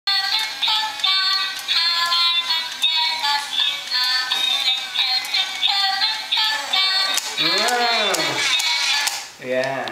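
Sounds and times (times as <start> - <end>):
toy playing tinny electronic melody: 0.1 - 9.0.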